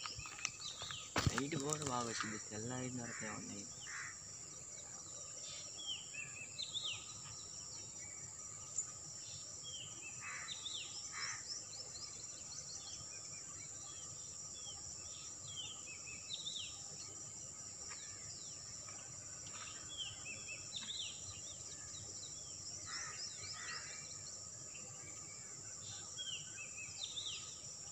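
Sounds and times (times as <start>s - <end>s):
birds chirping: 0.0s - 17.2s.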